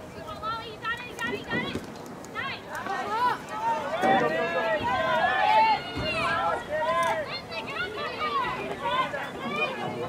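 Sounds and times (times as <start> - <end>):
high voices shouting: 2.4 - 10.0.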